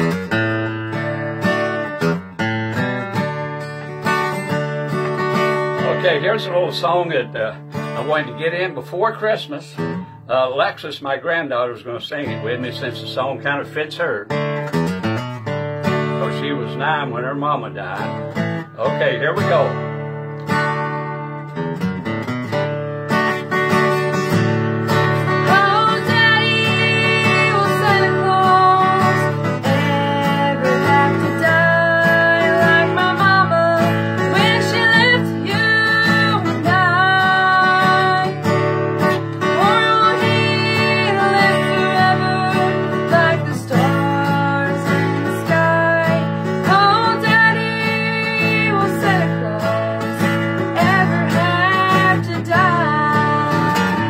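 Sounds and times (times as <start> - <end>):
mandolin: 0.0 - 10.7, 11.5 - 54.0
acoustic guitar strumming: 0.0 - 54.0.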